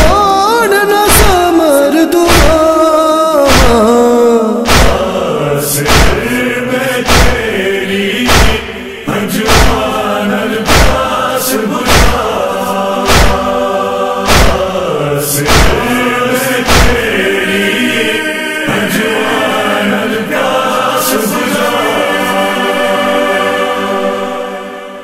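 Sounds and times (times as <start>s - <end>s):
chorus singing a lament: 0.0s - 25.0s
heavy thumps: 2.3s - 2.7s, 4.7s - 5.2s, 5.8s - 6.4s, 7.0s - 7.6s, 8.2s - 8.8s, 9.4s - 9.9s, 10.6s - 11.2s, 11.8s - 12.4s, 13.0s - 13.5s, 14.2s - 14.8s, 15.4s - 16.0s, 16.6s - 17.2s.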